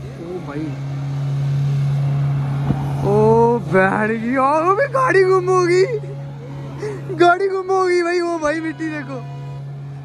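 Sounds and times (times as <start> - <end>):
suv engine running hard: 0.0 - 10.0.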